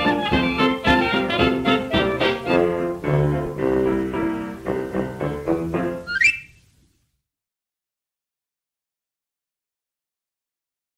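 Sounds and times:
jazz band chord: 0.0s - 6.1s
whistled rising run: 6.1s - 6.6s.

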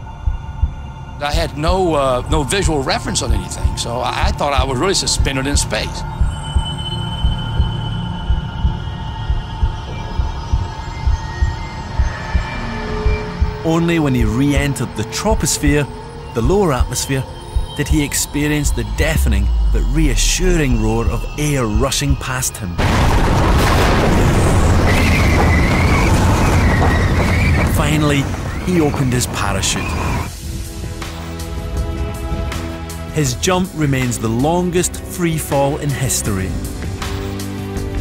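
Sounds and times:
low heartbeat-like thuds: 0.0s - 15.8s, 16.4s - 22.2s
high steady whistle: 5.8s - 22.7s.

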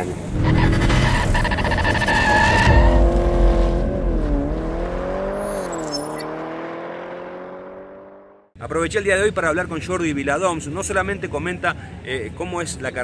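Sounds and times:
engine and tyre noise: 0.0s - 8.5s
high squealing tyres: 0.3s - 4.0s
engine note dipping and rising: 2.7s - 8.4s.

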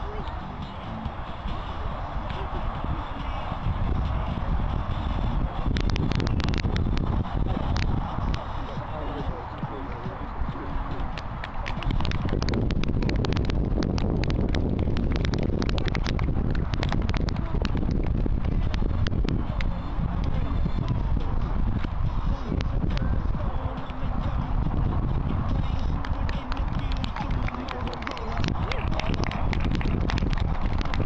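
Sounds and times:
steady low rumble: 0.0s - 31.0s
audience clapping: 5.7s - 8.4s, 10.9s - 18.8s, 26.0s - 31.0s.

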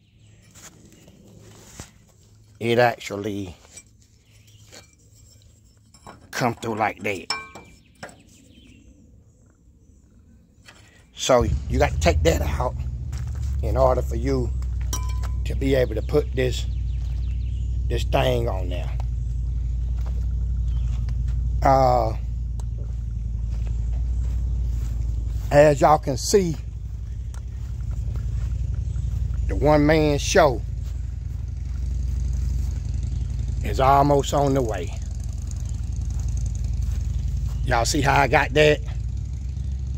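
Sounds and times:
footsteps on dirt: 0.3s - 5.4s, 10.6s - 39.8s
faint low rumble: 11.3s - 38.0s.

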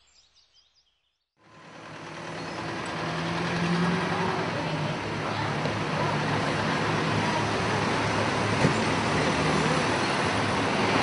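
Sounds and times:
heavy vehicle engine running: 1.4s - 11.0s
road traffic noise: 1.4s - 11.0s.

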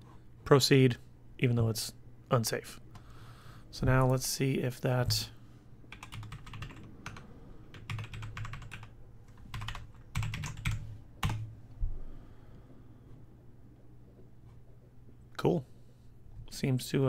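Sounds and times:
computer keyboard typing: 5.9s - 11.5s.

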